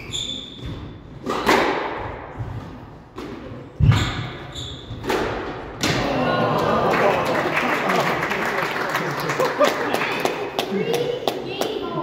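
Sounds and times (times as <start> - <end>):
crowd noise and voices: 5.9 - 12.0.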